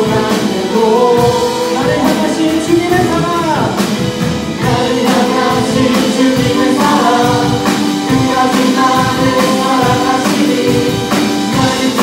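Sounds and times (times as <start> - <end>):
group singing a praise song: 0.0 - 2.3, 4.5 - 12.0
band accompaniment with drums: 0.0 - 12.0.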